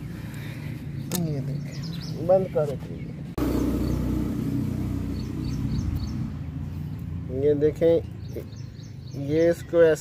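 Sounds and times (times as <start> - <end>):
bird chirps: 1.0 - 7.1, 8.0 - 10.0
engine humming: 3.3 - 8.6.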